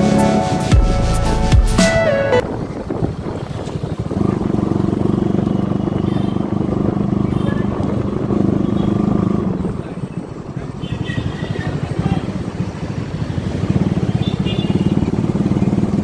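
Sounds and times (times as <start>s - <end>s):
background music with a beat: 0.0s - 2.4s
motorcycle engine running: 2.4s - 9.8s, 10.4s - 16.0s.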